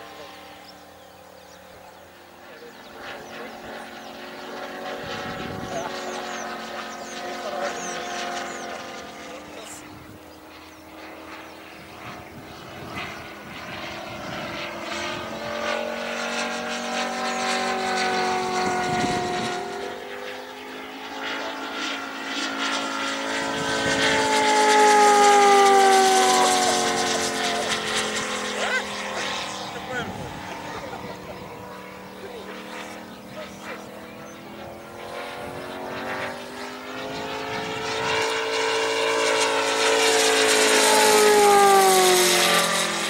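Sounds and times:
model plane radial engine: 0:00.0 - 0:43.0.

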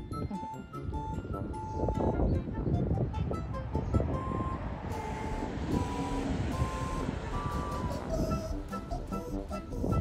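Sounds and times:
engine rumble: 0:00.4 - 0:10.0
reversing alarm beeps: 0:04.0 - 0:09.4.

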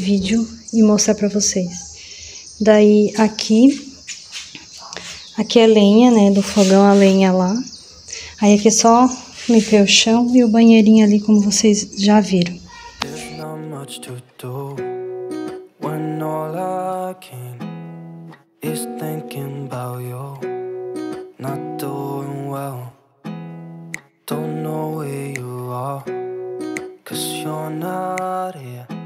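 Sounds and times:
strummed acoustic guitar music: 0:12.6 - 0:29.0.

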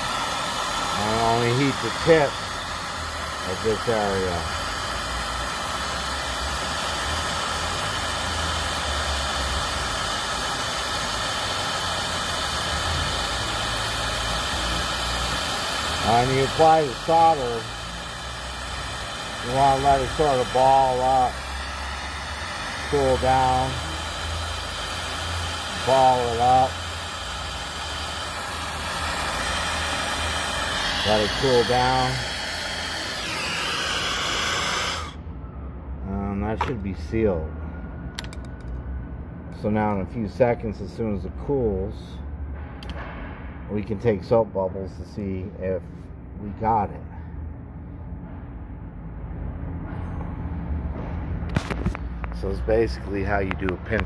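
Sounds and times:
torch flame hissing: 0:00.0 - 0:35.2.

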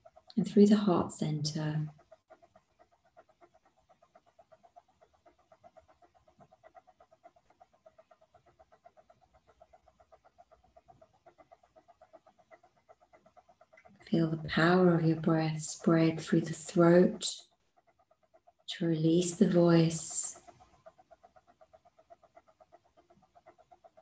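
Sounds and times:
low pulsing hum: 0:00.0 - 0:03.2, 0:05.5 - 0:17.5, 0:18.6 - 0:20.6.

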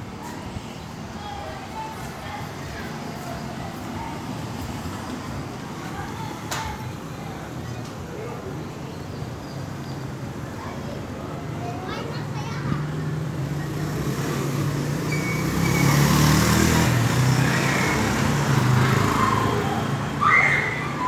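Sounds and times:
vehicle engine in traffic: 0:00.0 - 0:21.0.

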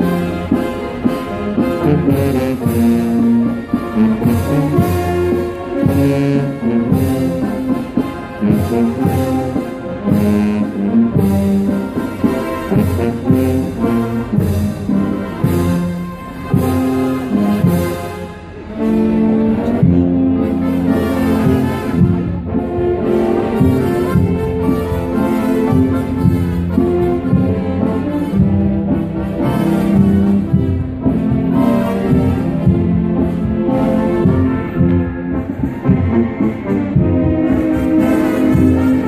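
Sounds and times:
brass band march: 0:00.0 - 0:39.0
percussion strikes: 0:00.0 - 0:39.0.

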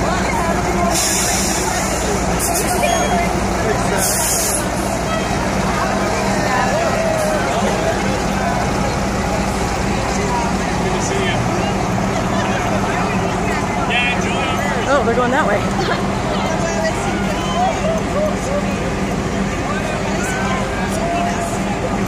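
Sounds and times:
crowd chattering and cheering: 0:00.0 - 0:22.0
diesel engine humming: 0:00.0 - 0:22.0.

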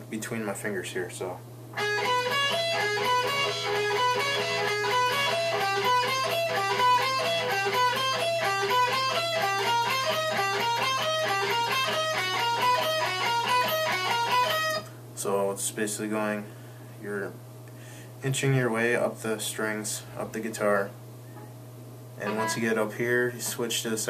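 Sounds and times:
electric guitar picked notes: 0:01.8 - 0:14.9, 0:22.2 - 0:22.9.

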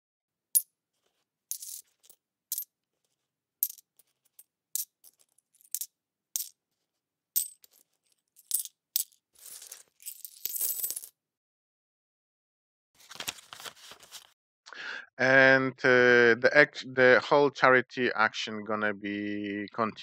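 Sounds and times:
coins clinking: 0:01.5 - 0:02.7, 0:03.6 - 0:06.5, 0:07.4 - 0:11.1
coins jingling: 0:01.5 - 0:02.7, 0:03.6 - 0:06.5, 0:07.4 - 0:11.1.

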